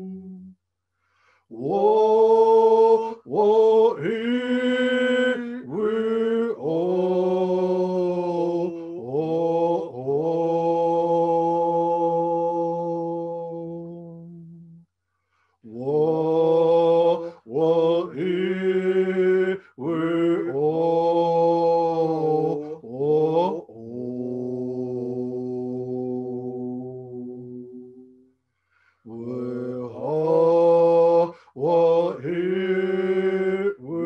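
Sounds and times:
man singing unaccompanied: 0.0 - 0.5, 1.5 - 14.8, 15.7 - 28.1, 29.1 - 34.0.

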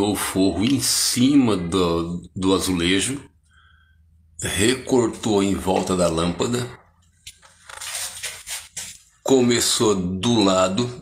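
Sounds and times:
phone rustling and scuffing: 7.3 - 9.2.

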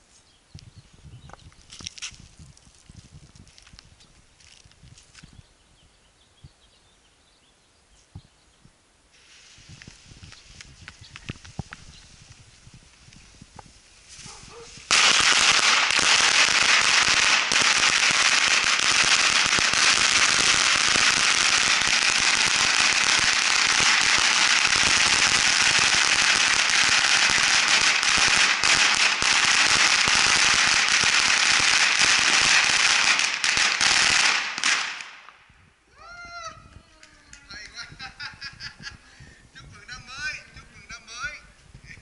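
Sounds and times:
string of firecrackers: 9.1 - 42.0.

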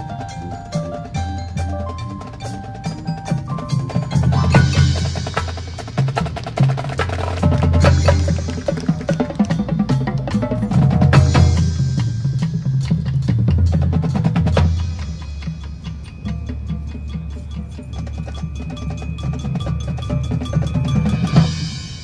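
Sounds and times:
high held ringing tones: 0.0 - 13.1, 14.6 - 22.0
drums beating: 0.0 - 22.0
marching band playing: 0.0 - 22.0
steady ticking rhythm: 0.0 - 22.0.

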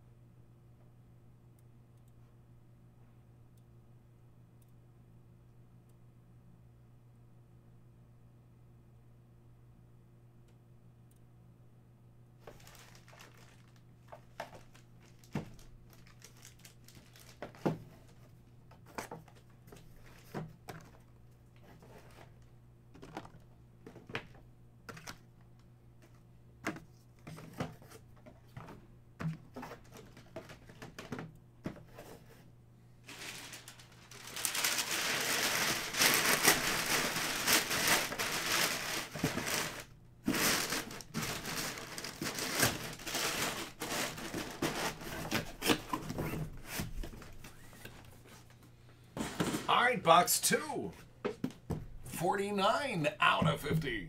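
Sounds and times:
plastic and cardboard crinkling: 12.4 - 22.4, 26.0 - 32.4, 33.0 - 48.6.

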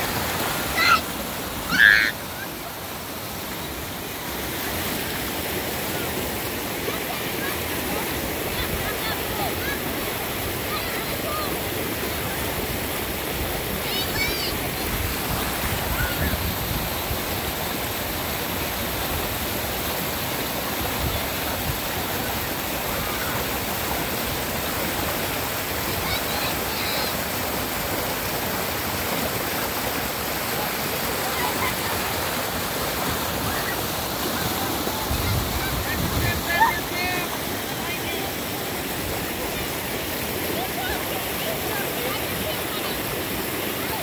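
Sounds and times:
creek water rushing over rocks: 0.0 - 44.0
faint voices: 30.0 - 44.0.

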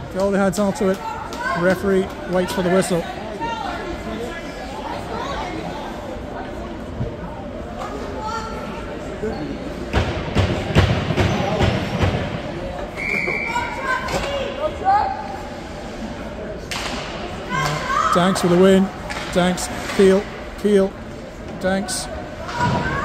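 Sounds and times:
voices echoing in arena: 0.0 - 23.0.

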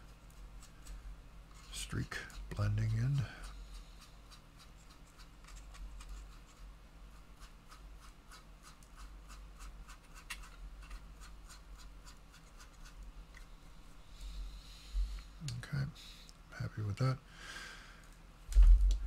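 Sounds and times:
paintbrush scrubbing on plastic: 0.0 - 13.0.

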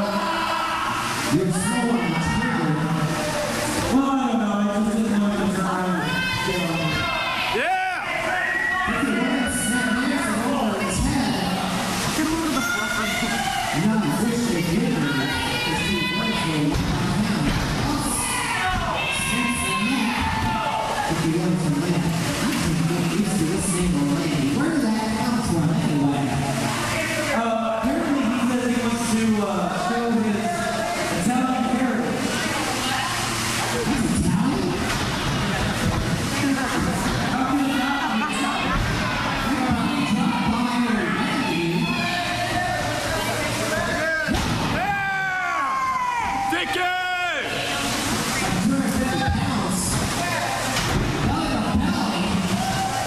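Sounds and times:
crowd chatter: 0.0 - 53.0.

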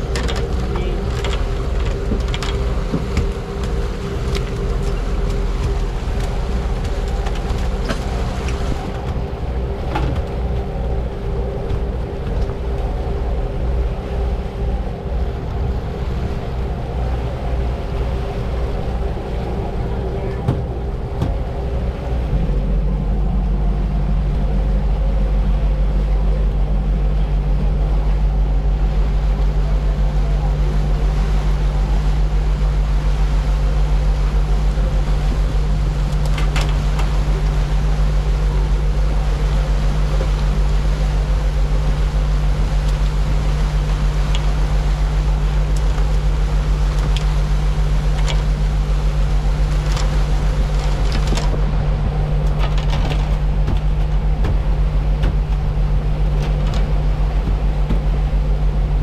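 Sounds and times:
boat engines droning: 0.0 - 59.0.

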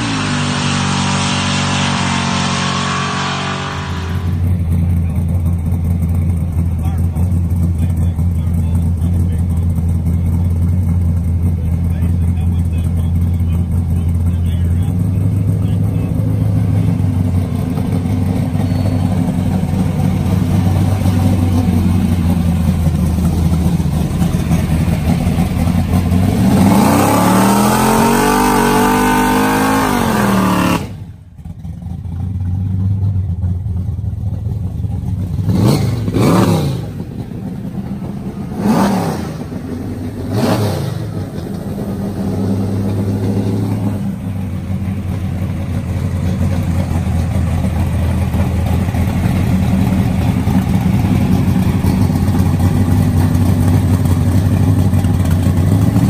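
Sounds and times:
engine idling and revving: 0.0 - 56.0
engine throttle blips: 0.0 - 56.0.

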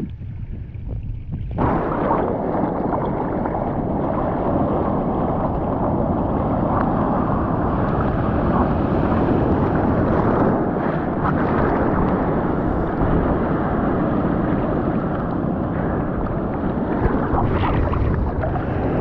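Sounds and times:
sea water sloshing and splashing: 0.0 - 19.0
wind buffeting microphone: 0.0 - 19.0.

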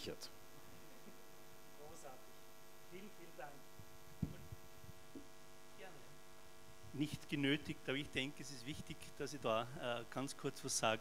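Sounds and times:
electrical mains hum: 0.0 - 11.0
microphone being handled: 3.8 - 5.4.

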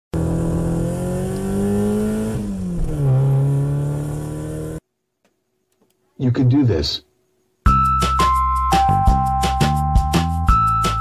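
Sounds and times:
car engine accelerating: 0.1 - 4.8.

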